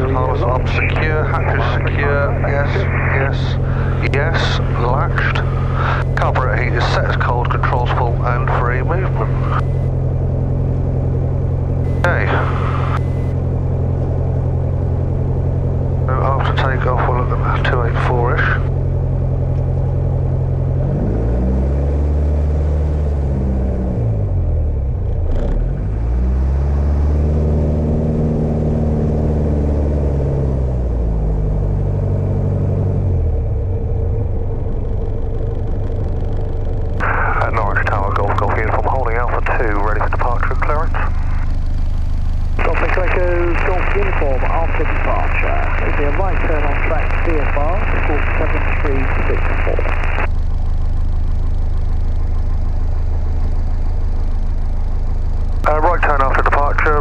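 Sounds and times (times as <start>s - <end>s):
radio voice transmissions: 0.0s - 9.9s, 11.9s - 13.4s, 16.0s - 18.7s, 37.0s - 41.6s, 42.6s - 50.3s, 55.6s - 57.0s
piston aircraft engine running: 0.0s - 57.0s.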